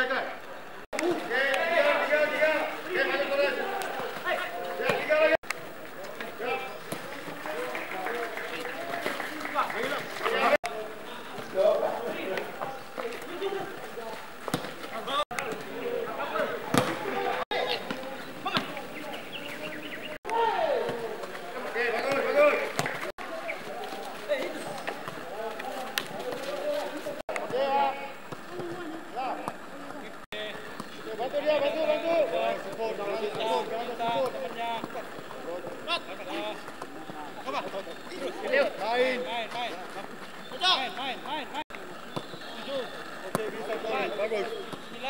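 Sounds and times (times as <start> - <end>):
players calling and shouting: 0.0 - 45.0
ball being kicked thuds: 14.4 - 15.6, 16.5 - 18.8.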